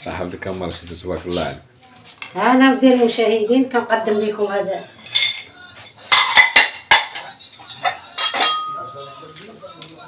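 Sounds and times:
crockery and cutlery clinking: 4.8 - 9.9.

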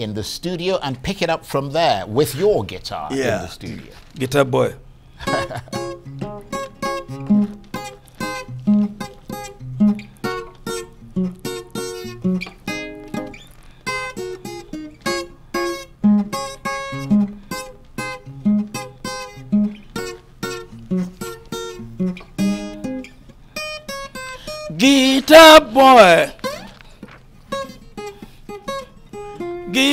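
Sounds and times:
solo acoustic guitar: 4.8 - 29.9.

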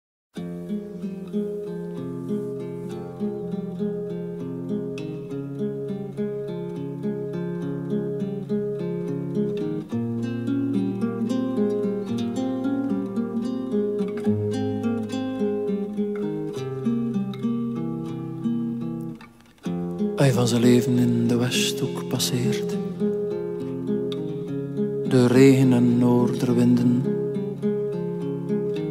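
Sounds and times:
acoustic guitar picking melody: 0.4 - 28.9.

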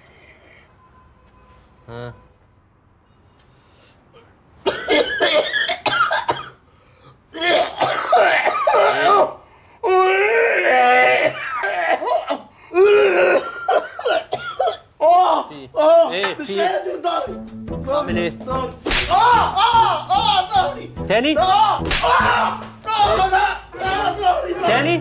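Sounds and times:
man coughing hard: 4.6 - 6.6, 7.4 - 9.4, 11.2 - 14.9.

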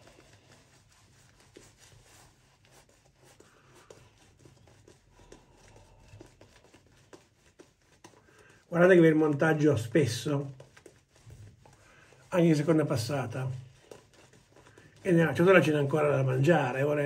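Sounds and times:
razor scratching stubble: 0.0 - 17.0.

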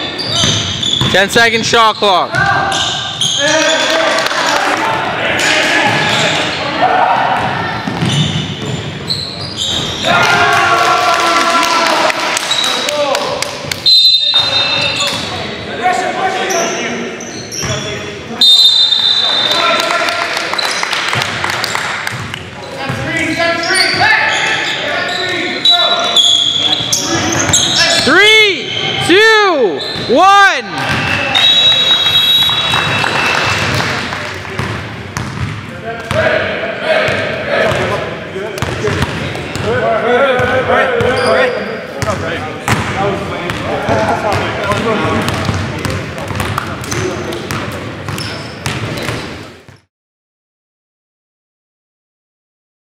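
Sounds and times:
loud shoe squeaks: 0.0 - 3.9, 7.9 - 10.1, 12.5 - 12.9, 13.8 - 15.3, 16.4 - 19.6, 22.6 - 29.0, 29.8 - 30.2, 30.8 - 33.8, 41.0 - 42.1, 48.1 - 49.8
high whistle tones: 13.8 - 15.0, 18.3 - 19.6, 30.8 - 33.8.

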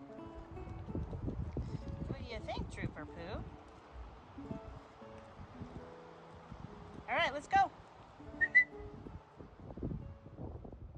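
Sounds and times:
person whistling short notes: 8.4 - 8.8.

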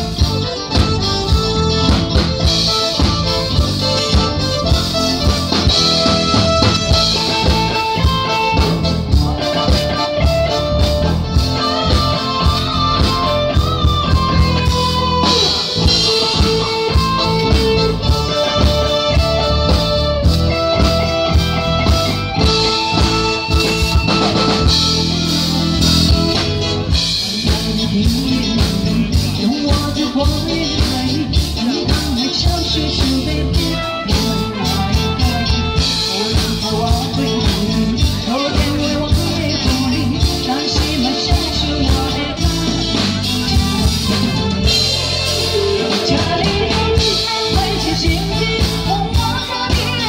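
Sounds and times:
bass guitar: 0.0 - 50.0
drum kit: 0.0 - 50.0
guitar melody: 0.0 - 50.0.

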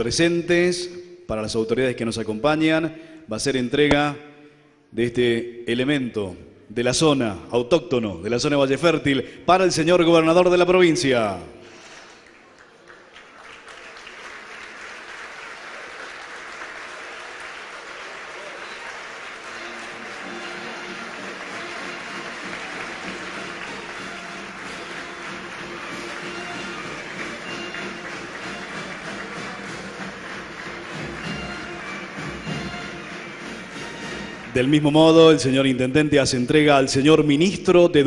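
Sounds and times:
audience applauding: 11.7 - 34.9
music playing: 13.8 - 36.3.

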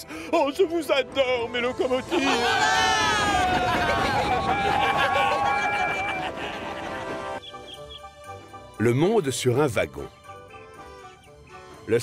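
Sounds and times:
cartoon voices cheering: 2.1 - 6.5.

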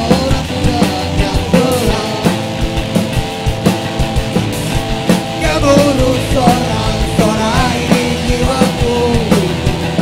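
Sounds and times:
drum kit beat: 0.0 - 10.0
guitars strumming chords: 0.0 - 10.0.

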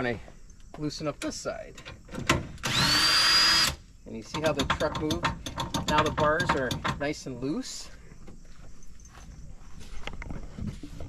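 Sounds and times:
hand tool clicks and knocks: 4.2 - 7.2.

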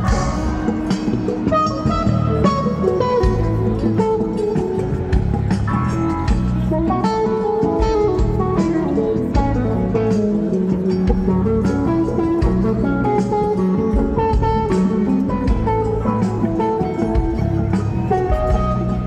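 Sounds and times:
bass and drums: 0.0 - 19.0
electric guitar lead: 0.0 - 19.0.

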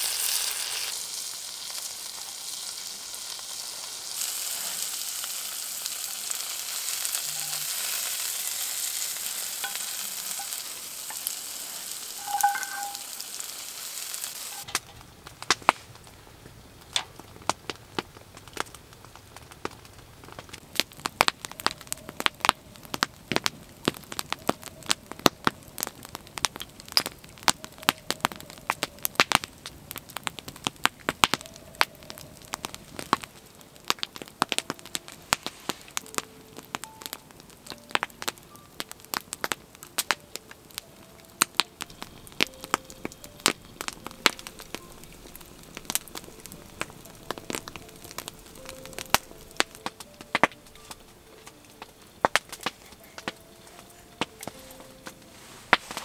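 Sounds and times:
burning wood popping: 0.0 - 56.0
log fire crackling: 0.0 - 56.0.

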